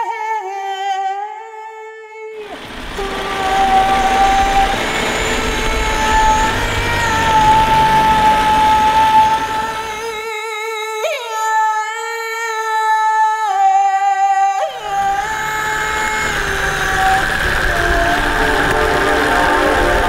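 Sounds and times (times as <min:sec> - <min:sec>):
loud even rumbling: 0:02.4 - 0:10.3, 0:14.8 - 0:20.0.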